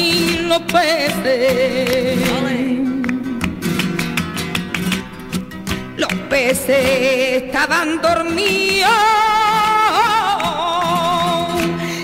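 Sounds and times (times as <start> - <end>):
spanish guitar strumming: 0.0 - 12.0.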